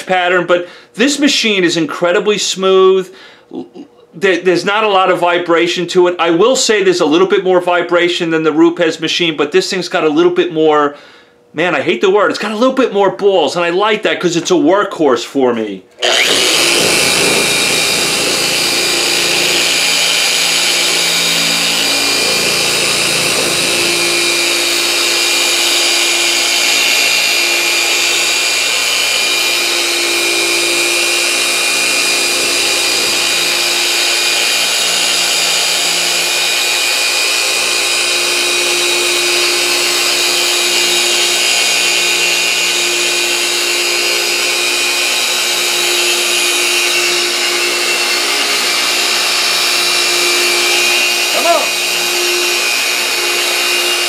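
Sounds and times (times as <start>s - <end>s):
orbital polisher running: 16.0s - 54.0s.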